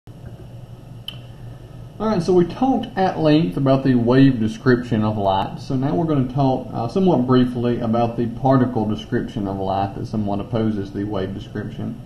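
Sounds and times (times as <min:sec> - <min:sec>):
low background hum: 0:00.1 - 0:12.0
sharp click: 0:01.1 - 0:01.3.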